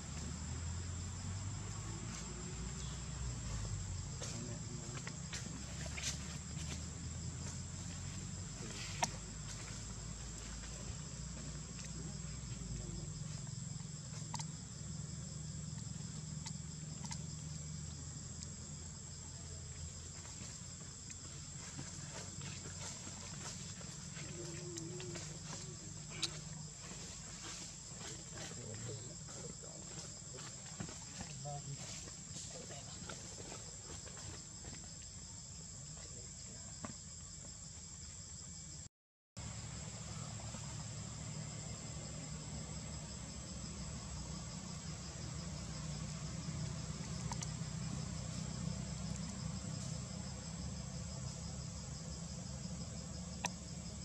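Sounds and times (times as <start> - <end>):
insects trilling: 0.0 - 54.0.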